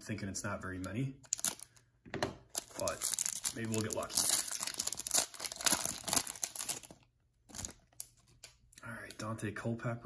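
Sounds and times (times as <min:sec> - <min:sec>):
foil wrapper tearing and crinkling: 0:01.3 - 0:01.7, 0:02.6 - 0:08.2.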